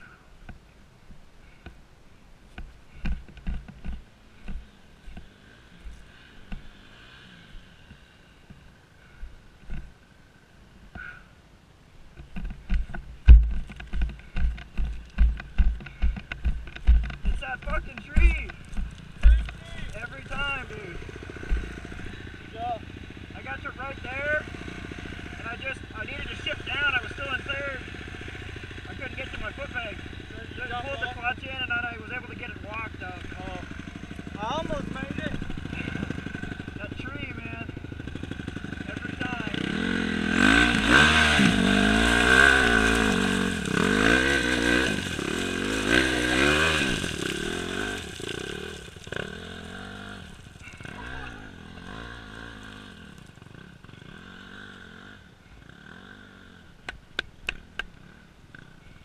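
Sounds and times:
dirt bike engine revving: 0:02.9 - 0:08.4, 0:12.6 - 0:56.8.

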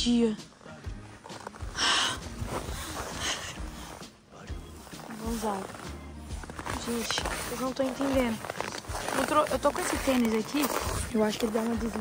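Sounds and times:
hand brushing snow: 0:01.3 - 0:12.0.

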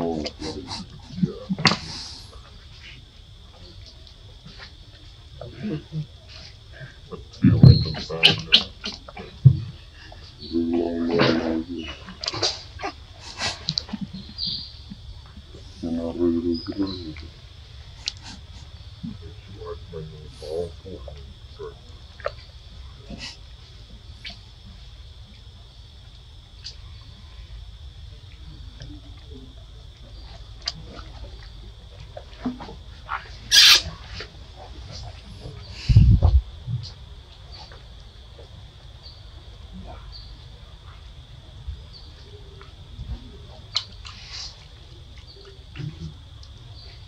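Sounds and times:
baby monkey squeaking: 0:33.5 - 0:33.9.

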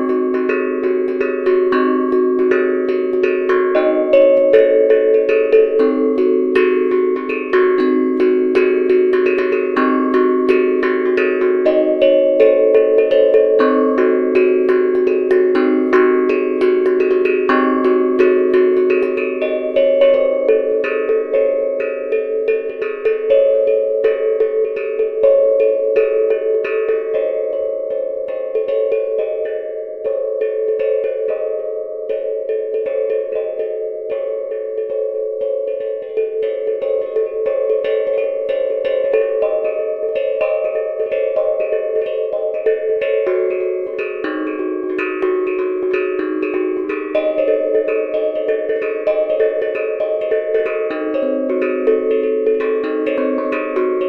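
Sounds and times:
steel tongue drum notes: 0:00.0 - 0:54.0.

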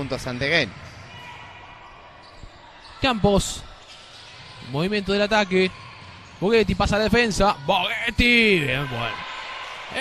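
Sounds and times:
basketball arena background noise: 0:00.0 - 0:10.0.

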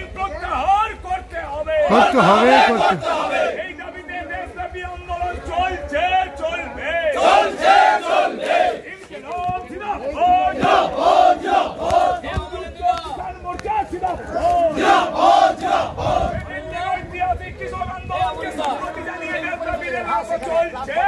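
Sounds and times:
crowd chanting slogans: 0:01.8 - 0:04.7, 0:05.4 - 0:12.8, 0:13.9 - 0:16.5.

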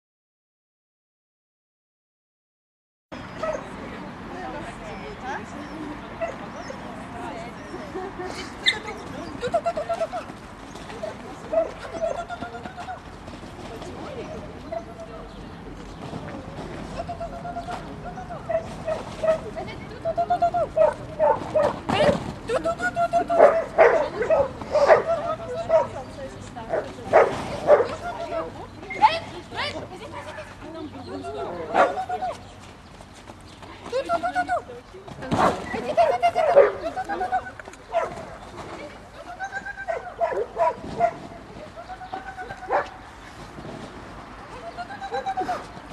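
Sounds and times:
outdoor background noise: 0:03.1 - 0:45.9
murmur of voices: 0:03.2 - 0:45.9
small dog barking: 0:03.4 - 0:03.7, 0:20.8 - 0:21.8, 0:23.4 - 0:25.1, 0:36.4 - 0:36.8, 0:37.9 - 0:38.2, 0:39.9 - 0:41.2.

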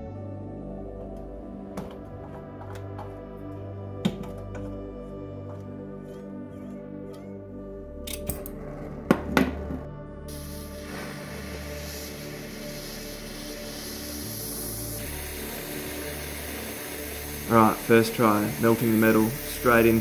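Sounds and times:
background music: 0:00.0 - 0:20.0
hiss of burning flame: 0:10.3 - 0:20.0.

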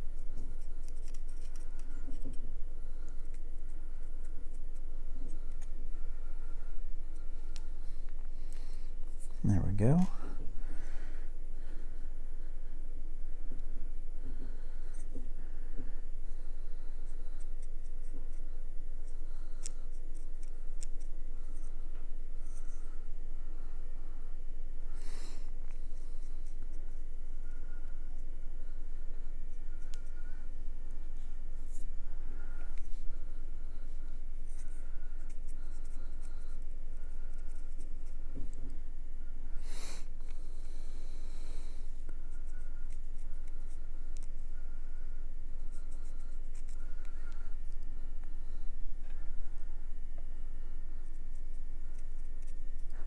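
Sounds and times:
steady low hum: 0:00.0 - 0:53.0.

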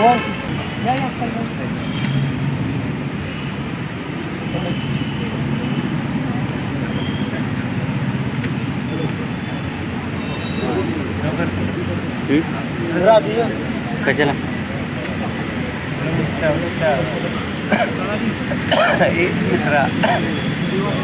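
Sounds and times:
indistinct chatter: 0:00.0 - 0:21.0.

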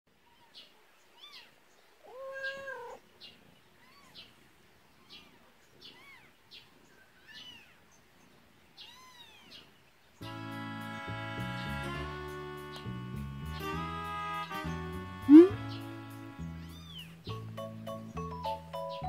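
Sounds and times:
kittens mewing: 0:01.2 - 0:03.1, 0:05.0 - 0:06.4, 0:08.8 - 0:09.7, 0:15.3 - 0:15.6.

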